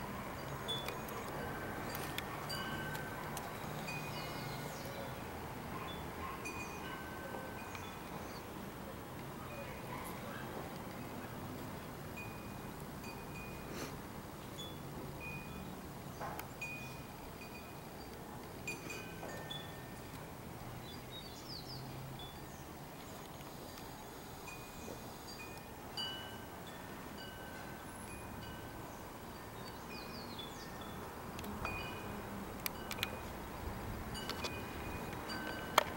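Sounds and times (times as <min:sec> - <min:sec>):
wind chime ringing: 0:00.4 - 0:04.8, 0:06.4 - 0:08.4, 0:14.6 - 0:15.7, 0:16.6 - 0:18.1, 0:18.7 - 0:20.0, 0:24.5 - 0:28.9, 0:34.1 - 0:35.9.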